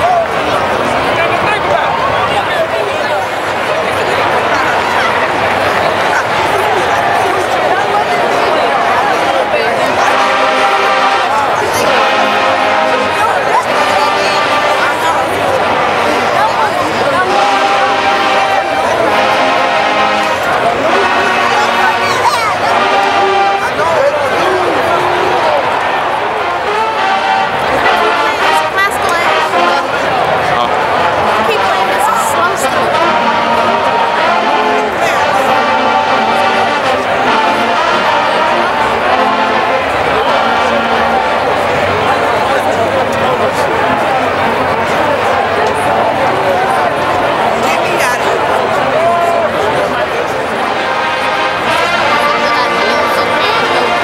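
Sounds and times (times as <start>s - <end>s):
crowd voices: 0.0s - 54.0s
marching band brass playing: 0.0s - 54.0s.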